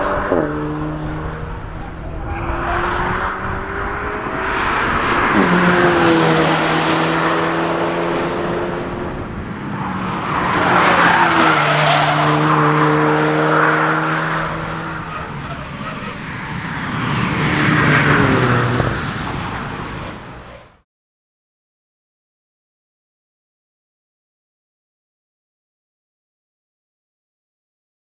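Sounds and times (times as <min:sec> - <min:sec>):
car engine pulling hard: 0:00.0 - 0:20.8
tyre and road noise: 0:00.0 - 0:20.8.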